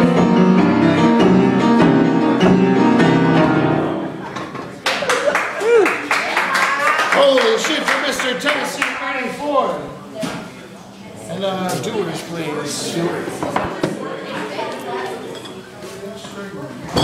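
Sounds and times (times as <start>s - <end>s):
boogie-woogie piano playing: 0.0s - 4.4s
audience clapping: 4.8s - 9.1s
audience whooping shouts: 5.5s - 7.0s.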